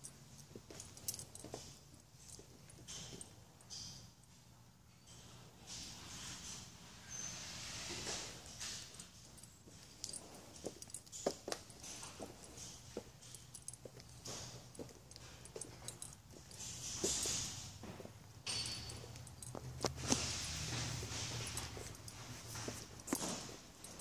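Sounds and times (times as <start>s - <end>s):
footsteps on tiled floor: 7.6s - 24.0s.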